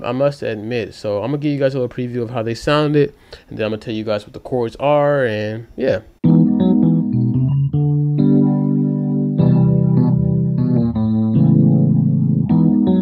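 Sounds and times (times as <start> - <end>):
chords on digital keyboard: 6.2 - 13.0.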